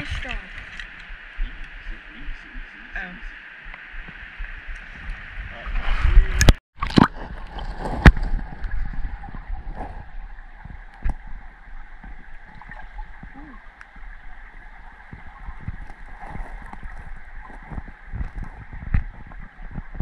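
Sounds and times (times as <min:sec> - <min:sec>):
small underwater clicks and knocks: 0:00.0 - 0:01.8, 0:06.4 - 0:20.0
muffled underwater creek rush: 0:00.0 - 0:20.0.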